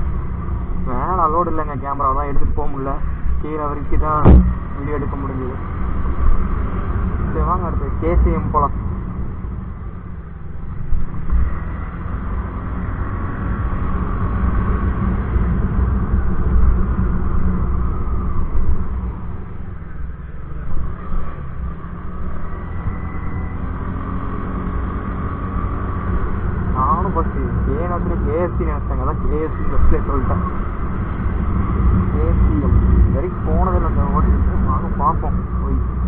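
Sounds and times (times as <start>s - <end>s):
faint whining tones: 0.0s - 36.0s.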